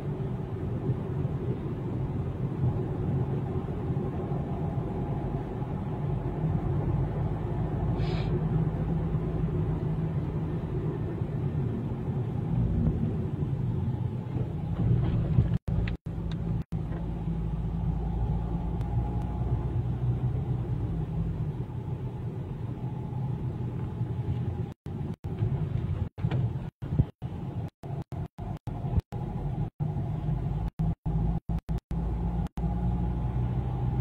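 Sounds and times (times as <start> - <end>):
car engine and road noise: 0.0 - 34.0.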